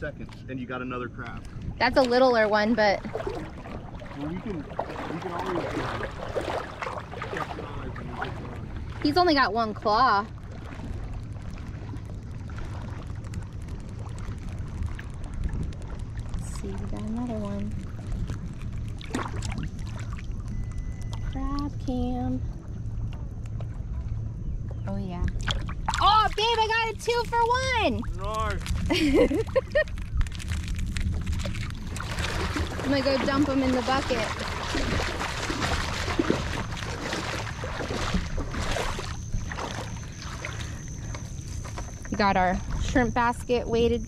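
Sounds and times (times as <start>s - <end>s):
wind buffeting the microphone: 0.0s - 20.2s, 23.9s - 44.0s
lapping water: 1.2s - 13.1s, 16.4s - 21.7s, 25.3s - 43.9s.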